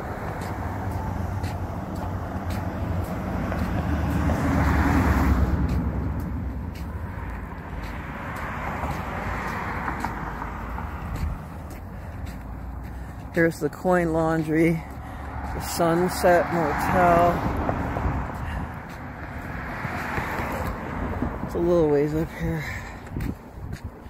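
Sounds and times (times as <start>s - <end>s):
cars passing: 0.0s - 24.0s.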